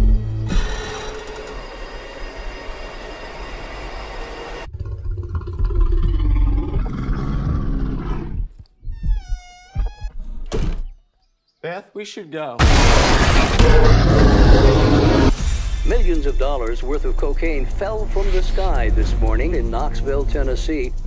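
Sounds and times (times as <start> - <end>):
low bear growl: 4.7 - 8.5
trailer music: 12.6 - 21.0.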